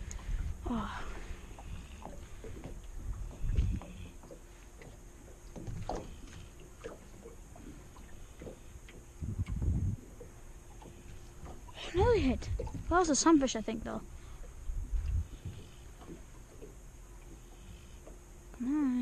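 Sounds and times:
water lapping against boat hull: 0:00.0 - 0:19.0
knocks and low thumps on hull: 0:01.6 - 0:13.2, 0:14.1 - 0:17.4.

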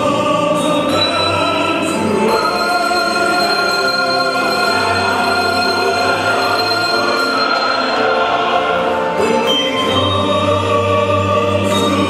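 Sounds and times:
recorded accompaniment with choir voices: 0:00.0 - 0:12.0
handbells ringing: 0:00.8 - 0:10.6.

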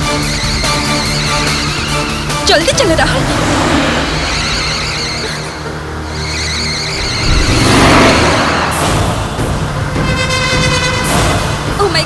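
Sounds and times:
dramatic film music: 0:00.0 - 0:12.0.

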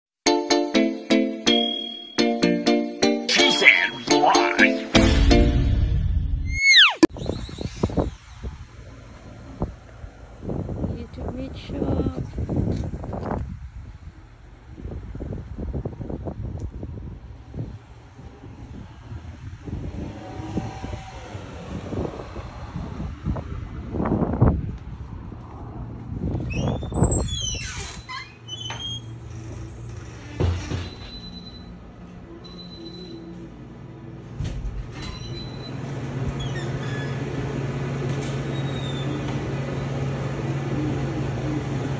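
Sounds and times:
falling whistle-like glide: 0:06.4 - 0:08.4
glass door squeaking: 0:06.5 - 0:08.3, 0:26.4 - 0:33.4, 0:34.4 - 0:37.6, 0:38.2 - 0:39.5.

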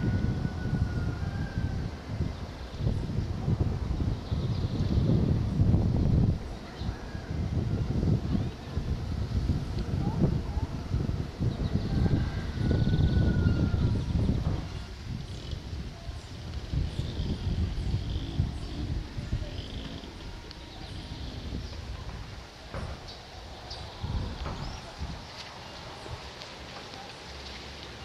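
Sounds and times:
wind buffeting microphone: 0:00.0 - 0:28.0.

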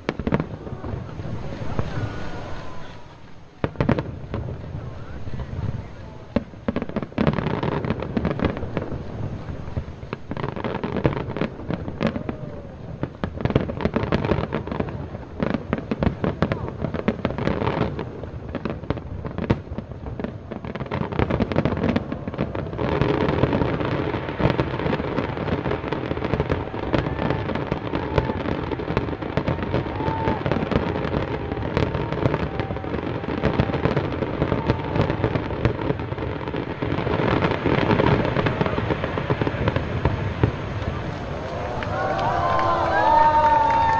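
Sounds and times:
crowd cheering: 0:00.0 - 0:06.4, 0:11.3 - 0:13.1, 0:20.2 - 0:43.9
crowd voices: 0:00.0 - 0:07.9, 0:11.4 - 0:17.0, 0:21.7 - 0:43.9
fireworks bursting and crackling: 0:00.0 - 0:43.9.

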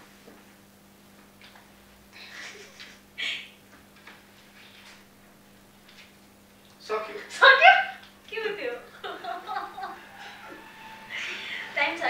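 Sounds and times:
low electrical hum: 0:00.0 - 0:12.0
excited voices and laughter: 0:07.3 - 0:12.0
high-pitched cries: 0:09.2 - 0:12.0.

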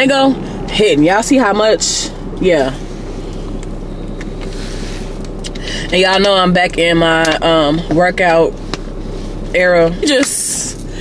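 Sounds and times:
car idling hum: 0:00.0 - 0:11.0.

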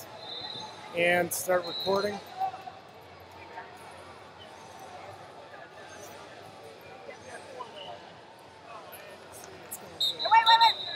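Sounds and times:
crowd chatter in large hall: 0:00.0 - 0:10.9.

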